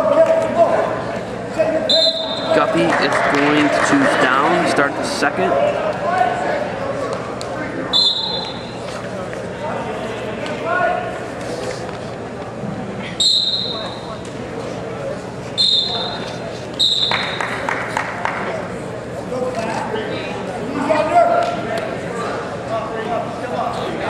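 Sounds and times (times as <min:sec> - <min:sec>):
murmur of voices echoing: 0:00.0 - 0:24.0
shrill whistle blasts: 0:01.9 - 0:02.6, 0:07.9 - 0:08.7, 0:13.2 - 0:14.1, 0:15.6 - 0:17.4.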